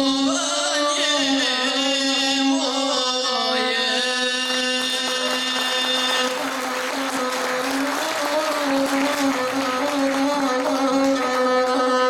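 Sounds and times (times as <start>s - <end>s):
man singing a sustained note: 0.0s - 6.6s
bowed fiddle held tone: 7.1s - 12.0s.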